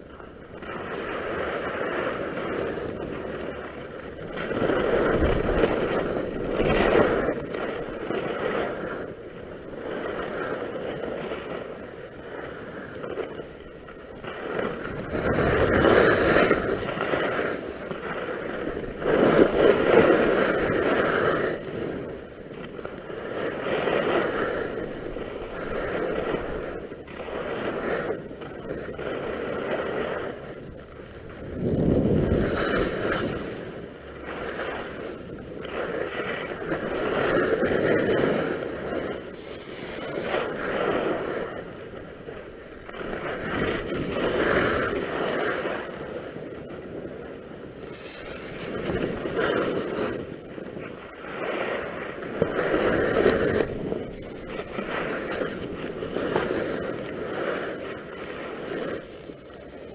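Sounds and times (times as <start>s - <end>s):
skis scraping on snow: 0.1s - 59.9s.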